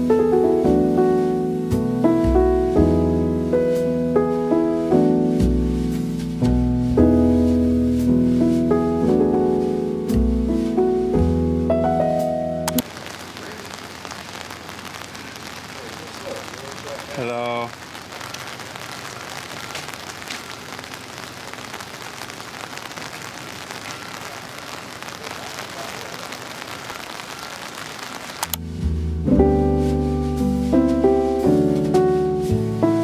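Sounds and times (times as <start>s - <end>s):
rain pattering on pavement: 12.7s - 28.9s
person's voice: 15.2s - 17.8s.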